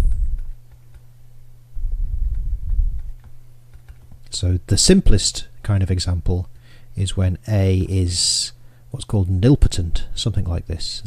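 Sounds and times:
steady low hum: 0.0 - 11.0
low rumble: 1.7 - 3.2
stylus tapping on tablet: 2.2 - 4.3.

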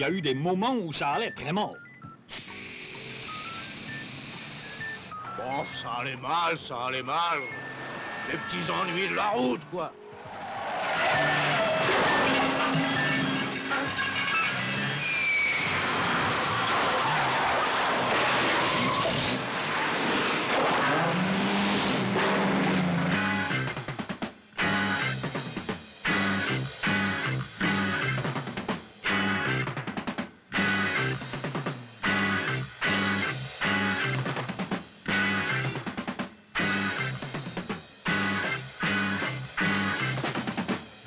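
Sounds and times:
music: 0.0 - 10.2, 11.0 - 15.0, 23.0 - 41.0
steady hiss: 2.3 - 5.1
car tyres screeching and skidding: 7.4 - 9.3, 10.1 - 23.4
high beep-like notes: 11.8 - 15.1.

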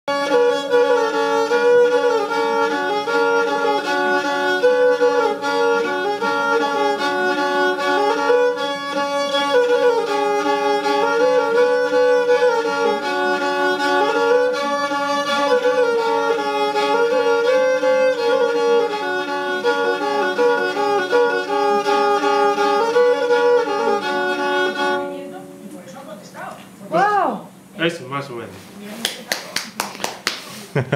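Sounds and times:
bowed string instrument tune: 0.1 - 26.2.

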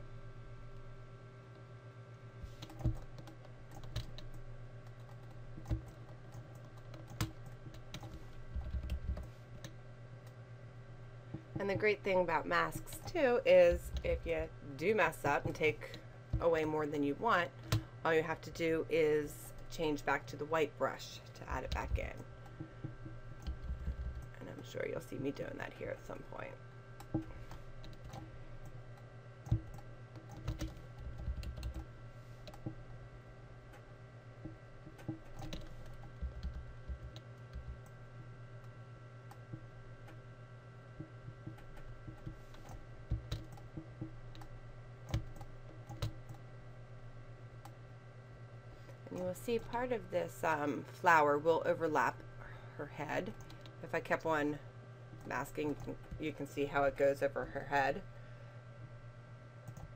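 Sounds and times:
low electrical hum: 0.0 - 59.9
keyboard and mouse clicks: 29.5 - 31.8, 34.8 - 37.9.

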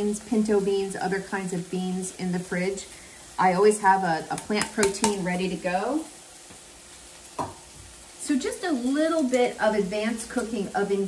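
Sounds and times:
chicken sizzling in skillet: 0.0 - 11.0.

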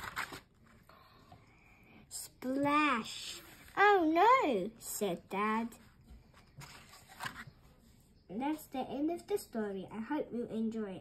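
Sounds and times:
paper page turning: 0.0 - 0.8, 6.4 - 7.6.

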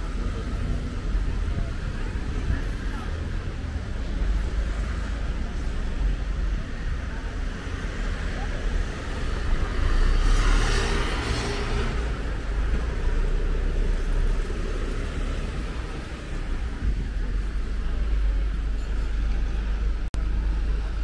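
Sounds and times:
bus passing close by: 0.0 - 21.0
low traffic rumble: 0.0 - 21.0.

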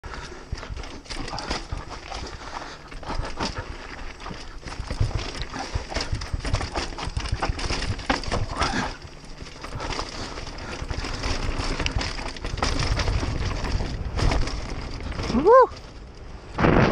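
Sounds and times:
bike rattling and knocking: 0.0 - 16.9
bike tyres crunching over dirt: 0.0 - 16.9
wind rumble on microphone: 9.7 - 16.9.

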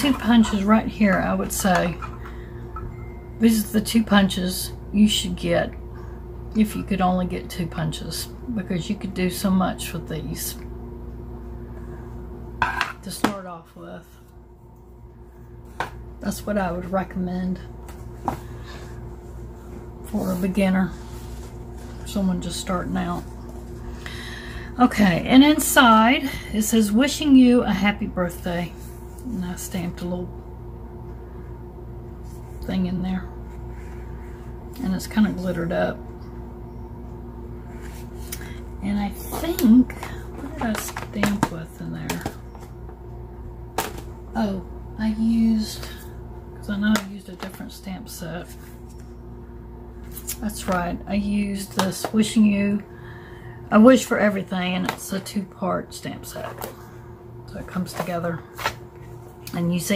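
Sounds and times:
woman speaking: 0.0 - 2.1, 3.4 - 5.8, 6.5 - 10.7, 13.0 - 14.2, 16.2 - 17.8, 20.0 - 21.1, 22.0 - 23.4, 24.6 - 30.4, 32.6 - 33.4, 34.8 - 36.1, 38.8 - 42.4, 44.3 - 48.6, 50.3 - 52.9, 53.7 - 56.7, 57.5 - 58.6, 59.5 - 59.9
steady low hum: 0.0 - 59.9.

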